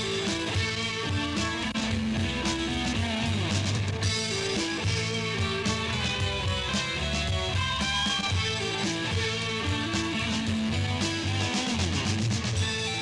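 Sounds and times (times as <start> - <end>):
bass guitar: 0.0 - 13.0
drums steady beat: 0.0 - 13.0
electric guitar: 0.0 - 13.0.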